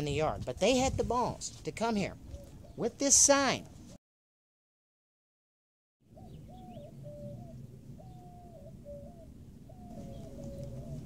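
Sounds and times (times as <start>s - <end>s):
dove cooing: 6.2s - 11.0s.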